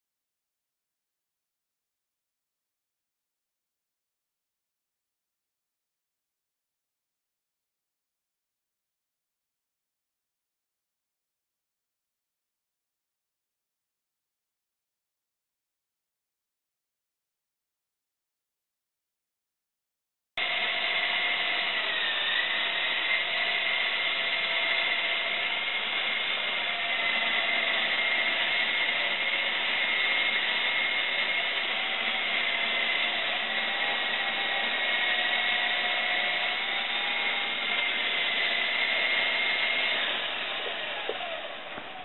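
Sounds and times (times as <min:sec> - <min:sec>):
rc helicopter motor whine: 0:20.4 - 0:42.0.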